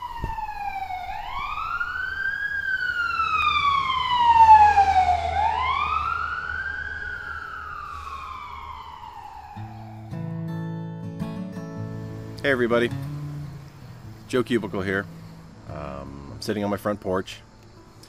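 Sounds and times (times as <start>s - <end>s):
siren wailing: 0.0s - 10.3s.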